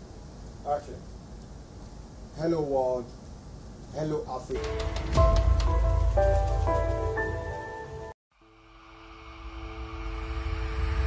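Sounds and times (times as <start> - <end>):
whooshing riser: 8.4 - 11.0.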